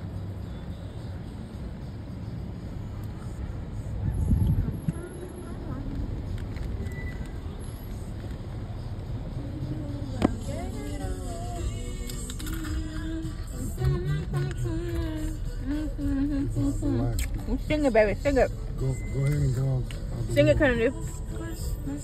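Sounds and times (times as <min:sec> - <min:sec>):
car cabin rumble: 0:09.6 - 0:18.5.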